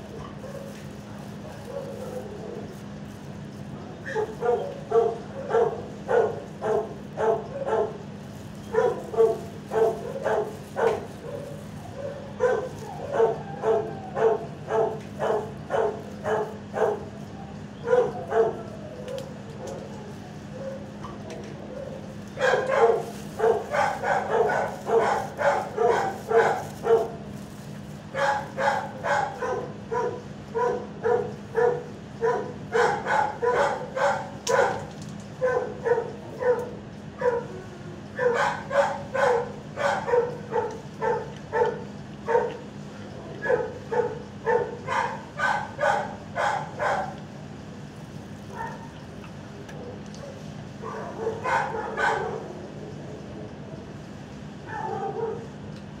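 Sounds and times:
dogs barking: 0:00.0 - 0:27.4, 0:28.0 - 0:47.4, 0:48.4 - 0:53.0, 0:54.4 - 0:55.7
steady low hum: 0:00.0 - 0:56.0.

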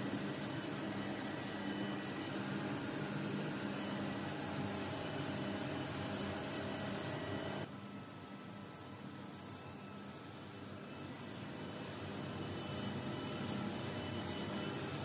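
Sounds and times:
ventilation hum: 0:00.0 - 0:15.0.

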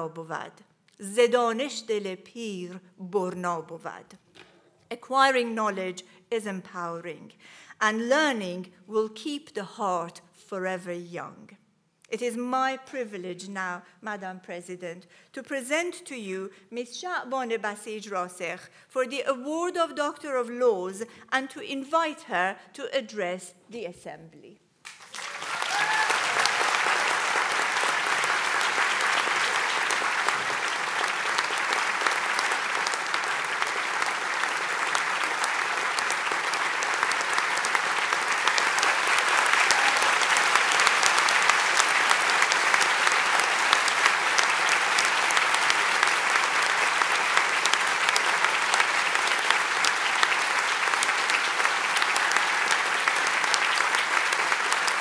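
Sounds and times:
large audience applauding: 0:24.8 - 0:55.0.

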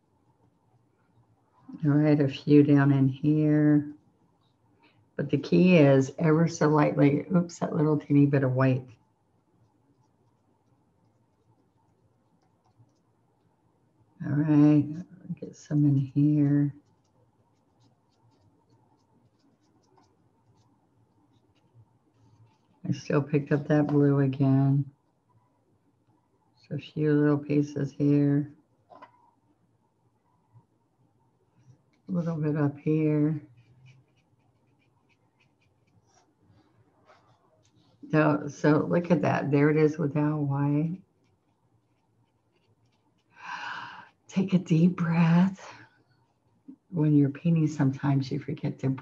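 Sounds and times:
paintbrush dabbing strokes: 0:07.8 - 0:14.0, 0:15.8 - 0:24.4, 0:31.5 - 0:38.1, 0:41.0 - 0:43.4, 0:45.9 - 0:46.6.

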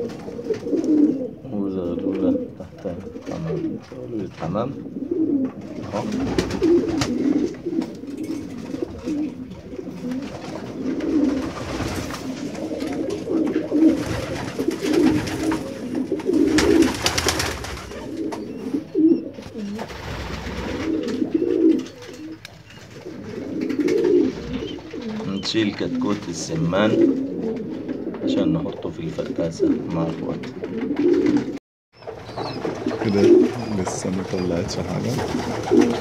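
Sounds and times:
pigeons cooing: 0:00.0 - 0:36.0.

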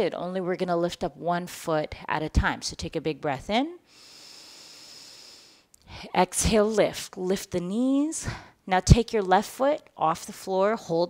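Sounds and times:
woman inhaling deeply: 0:03.9 - 0:06.0.

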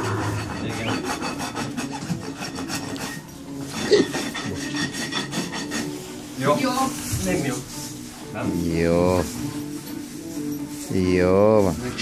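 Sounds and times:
rasp filing a hoof: 0:00.0 - 0:06.5.

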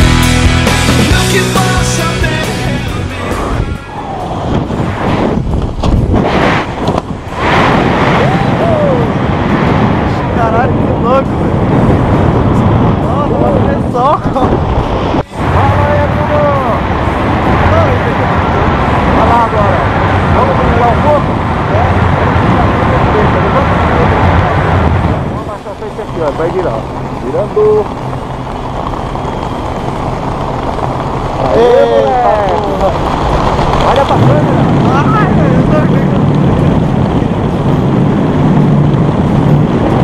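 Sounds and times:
wind rushing over microphone: 0:00.0 - 0:40.0
people shouting: 0:08.2 - 0:09.1.

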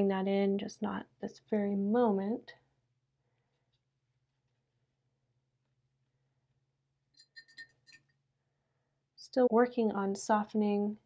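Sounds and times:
light clinks of small hard object: 0:07.2 - 0:08.1.

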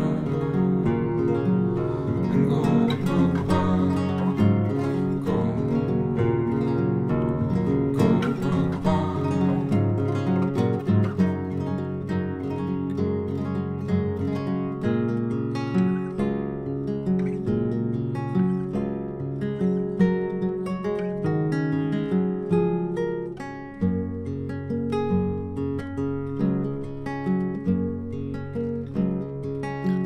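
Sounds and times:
acoustic guitar playing: 0:00.0 - 0:30.0.

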